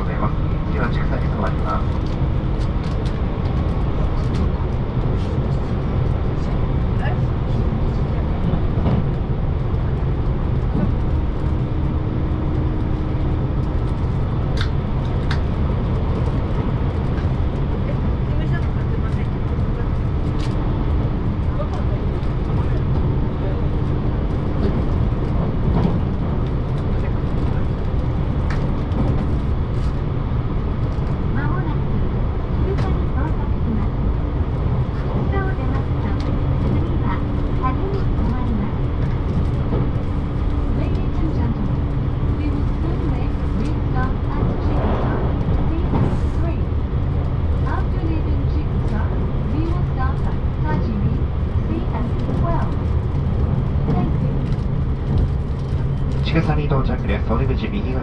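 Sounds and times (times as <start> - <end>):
train wheels rumbling on rail: 0.0 - 58.0.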